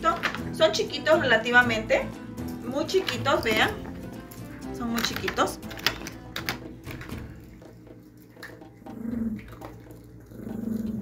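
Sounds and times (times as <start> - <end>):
small dog growling: 8.8 - 11.0.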